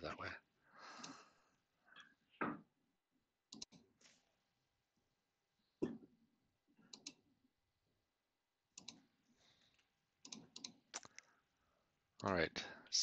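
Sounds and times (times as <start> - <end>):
faint keyboard and mouse clicking: 3.5 - 3.9, 6.9 - 7.2, 8.7 - 11.4.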